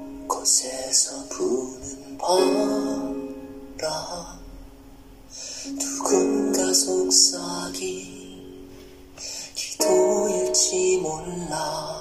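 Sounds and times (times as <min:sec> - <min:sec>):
piano: 0:00.0 - 0:12.0
male vocal quartet singing: 0:00.3 - 0:04.5, 0:05.8 - 0:08.4.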